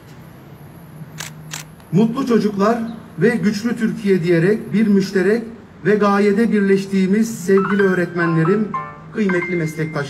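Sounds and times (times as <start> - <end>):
camera shutter clicks: 1.2 - 1.9.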